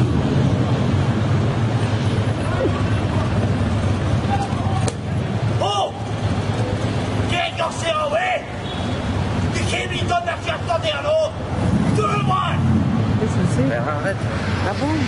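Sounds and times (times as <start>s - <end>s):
street traffic rumble: 0.0s - 15.0s.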